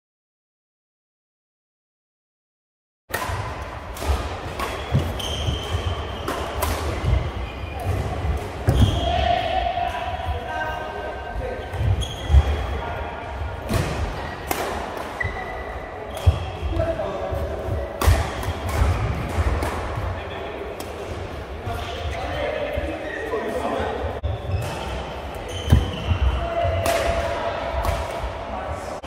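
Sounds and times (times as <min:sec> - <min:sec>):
racket striking shuttlecock: 0:03.1 - 0:07.2
voices in hall: 0:03.4 - 0:29.0
shoe squeaks on court: 0:04.6 - 0:07.8, 0:11.6 - 0:12.6, 0:15.2 - 0:16.7, 0:24.2 - 0:26.7.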